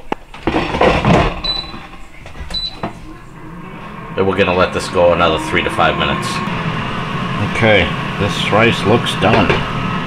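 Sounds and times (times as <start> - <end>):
air fryer basket clunking: 8.6 - 9.8.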